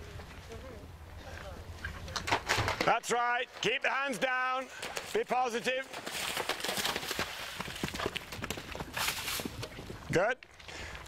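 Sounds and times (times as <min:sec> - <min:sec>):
hoofbeats on dirt: 0:01.2 - 0:11.0
horse splashing through water: 0:05.8 - 0:09.8.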